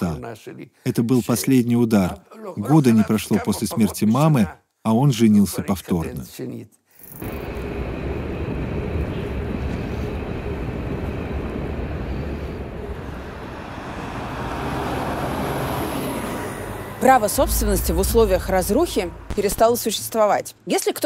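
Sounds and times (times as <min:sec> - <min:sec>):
road traffic rumble: 0:08.0 - 0:20.6.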